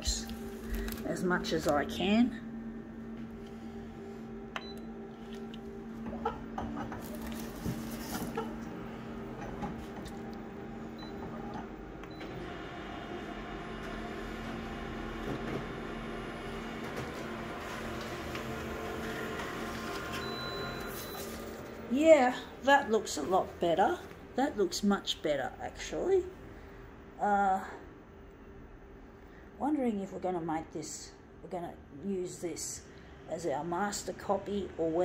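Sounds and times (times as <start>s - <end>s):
photocopier whirring: 0.0s - 24.3s
photocopier humming: 0.0s - 24.8s.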